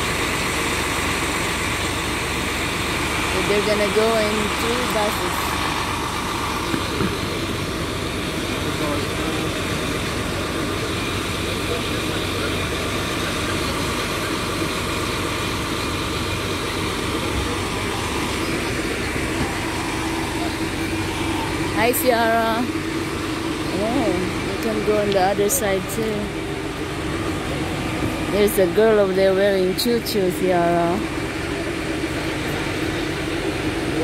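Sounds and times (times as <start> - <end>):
coach engine idling: 0.0 - 34.0
people talking: 3.3 - 5.6, 8.4 - 14.9, 16.6 - 22.8, 23.6 - 26.6, 27.2 - 31.1.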